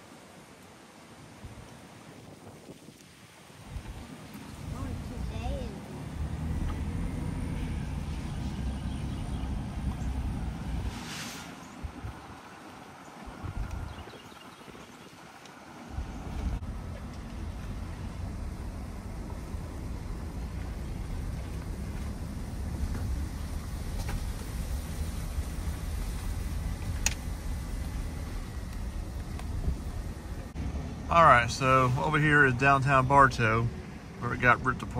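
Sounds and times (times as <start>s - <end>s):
car engine and tyre rumble: 0.0s - 34.9s.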